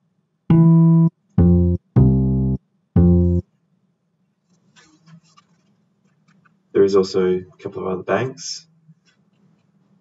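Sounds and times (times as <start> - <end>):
synth bass notes: 0.5 - 3.4.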